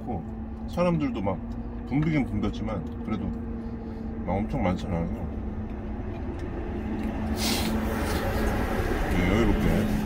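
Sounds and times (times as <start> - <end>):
truck engine idling: 0.0 - 10.0
short hiss: 7.4 - 8.2.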